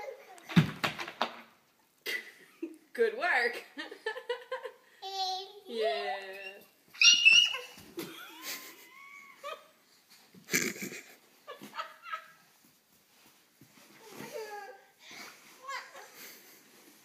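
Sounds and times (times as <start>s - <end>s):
toddler squealing: 6.4s - 7.8s.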